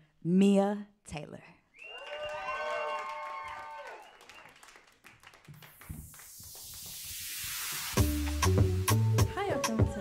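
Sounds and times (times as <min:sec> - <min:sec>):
audience applause: 0:01.9 - 0:07.0
noise sweep: 0:05.9 - 0:09.2
backing track music: 0:06.6 - 0:10.0.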